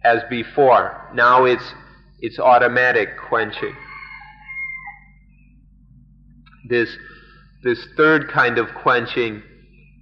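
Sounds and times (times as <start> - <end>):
low recording hum: 0.0 - 10.0.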